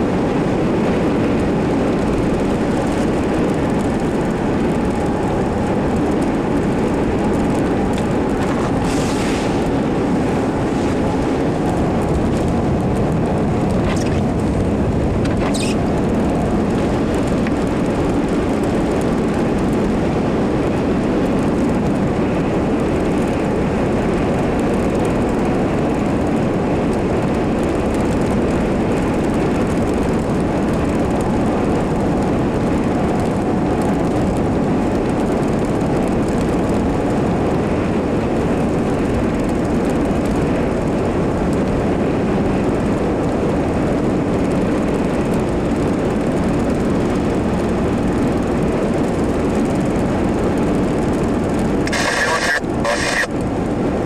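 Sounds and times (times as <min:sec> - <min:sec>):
vehicle engine and road noise: 0:00.0 - 0:54.0.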